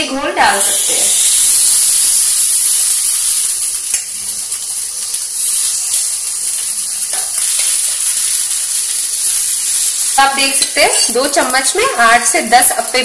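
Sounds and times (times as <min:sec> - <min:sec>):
batter sizzling in hot pan: 0:00.3 - 0:13.0.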